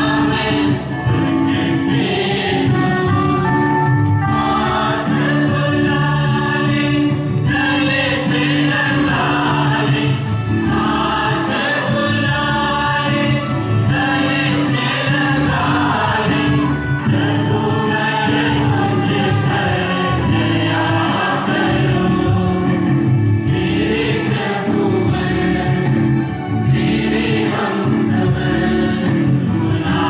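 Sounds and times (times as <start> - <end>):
choir singing: 0.0 - 30.0.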